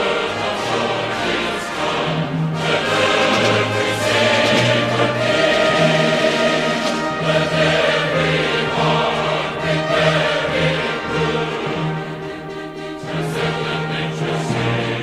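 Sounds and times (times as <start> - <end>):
choir singing held notes: 0.0 - 15.0
low accompaniment: 0.0 - 15.0.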